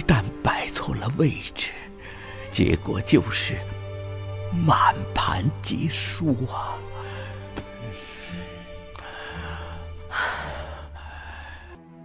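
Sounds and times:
person gasping: 2.0 - 2.5, 6.8 - 11.8.

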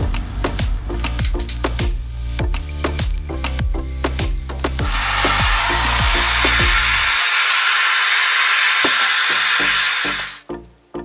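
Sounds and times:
bass-heavy electronic music: 0.0 - 7.2.

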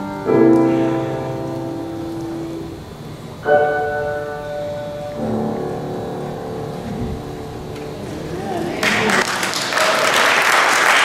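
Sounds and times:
grand piano slow chords: 0.0 - 9.3.

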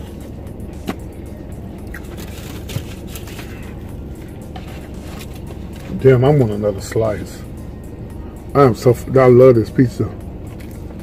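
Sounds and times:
car cabin hum: 0.0 - 11.0
faint background music: 0.0 - 11.0.

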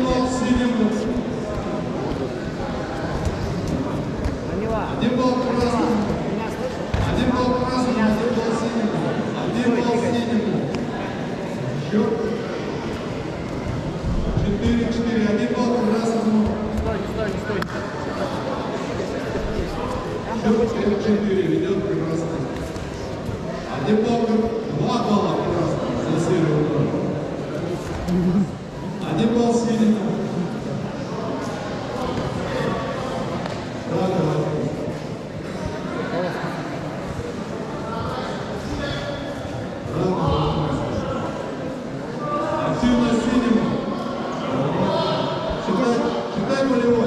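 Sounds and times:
indistinct voices in a hall: 0.0 - 47.0.

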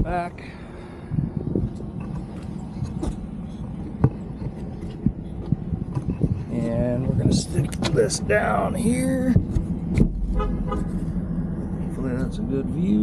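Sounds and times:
vehicle engine running: 0.0 - 13.0.

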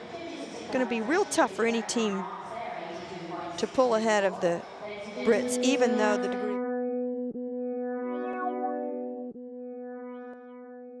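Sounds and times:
held musical chord: 5.2 - 11.0.

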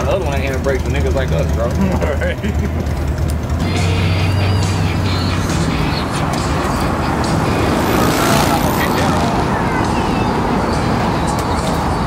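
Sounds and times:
city traffic: 0.0 - 12.0
indistinct voices: 3.6 - 12.0.

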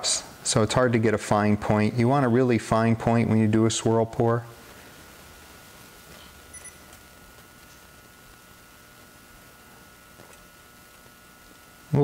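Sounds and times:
faint steady whine: 0.0 - 12.0.

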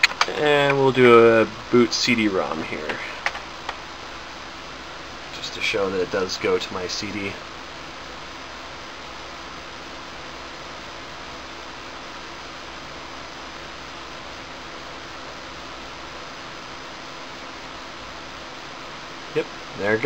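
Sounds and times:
computer cooling fans hissing: 0.0 - 20.0.

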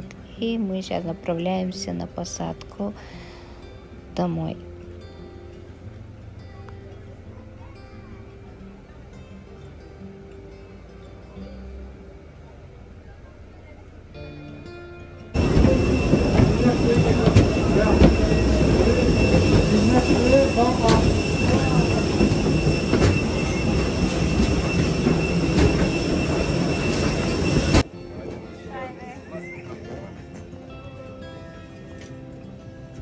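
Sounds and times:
footsteps on metal stairs: 15.4 - 27.8
high whine tones: 15.4 - 27.9
aircraft turbines roaring: 15.4 - 30.6.

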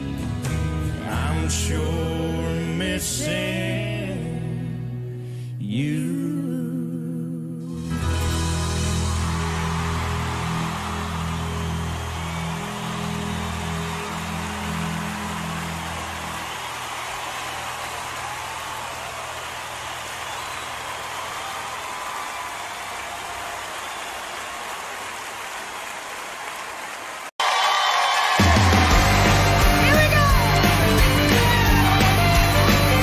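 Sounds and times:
arena audience applauding: 8.6 - 33.0.

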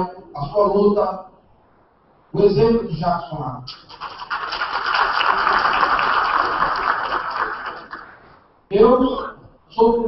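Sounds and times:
audience applauding: 3.8 - 8.2.

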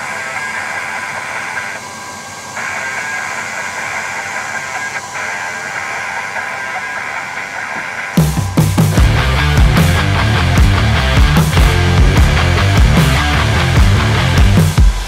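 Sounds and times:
laser cooling fan whirring hiss: 0.0 - 15.0.

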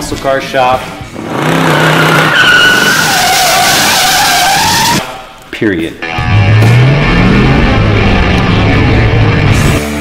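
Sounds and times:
car tyres squealing: 1.2 - 5.2.

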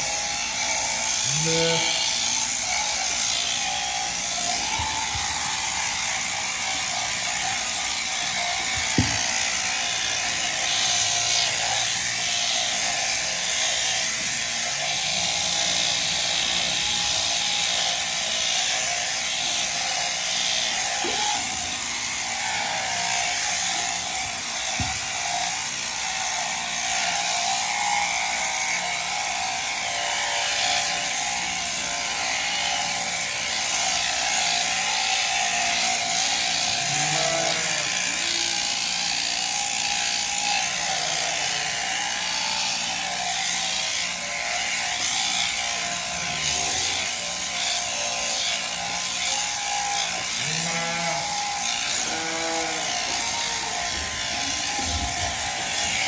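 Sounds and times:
shearing handpiece buzzing: 0.0 - 56.0.

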